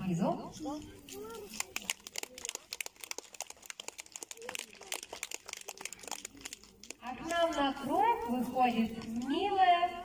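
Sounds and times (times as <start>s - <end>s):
faint voices: 0.4s - 10.0s
crowd applauding: 1.5s - 7.0s.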